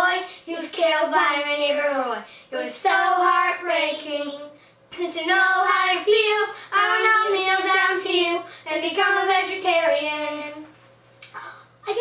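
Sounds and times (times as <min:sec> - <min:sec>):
child singing: 0:00.0 - 0:10.7.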